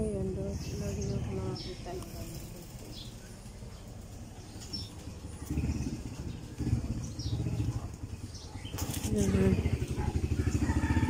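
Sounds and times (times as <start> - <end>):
engine running with low pulse: 0.0 - 11.0.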